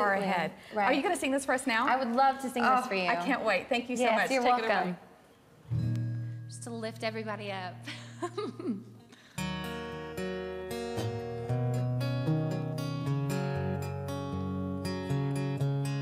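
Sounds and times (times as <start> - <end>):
acoustic guitar strummed chords: 5.7 - 7.3, 9.2 - 16.0
person laughing: 7.8 - 9.1.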